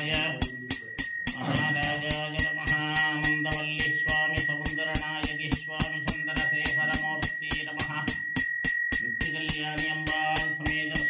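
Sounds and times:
temple bells ringing rapidly: 0:00.0 - 0:11.0.

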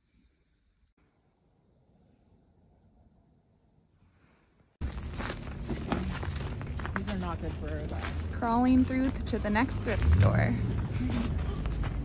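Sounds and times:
footsteps crunching in snow: 0:04.8 - 0:12.0
steady low rumble: 0:04.8 - 0:12.0.

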